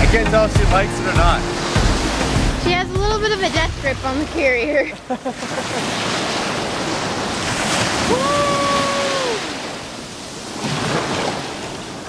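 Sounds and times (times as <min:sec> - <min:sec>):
person's voice: 0:00.0 - 0:01.4, 0:02.6 - 0:05.0
waves breaking on sandy beach: 0:00.4 - 0:12.0.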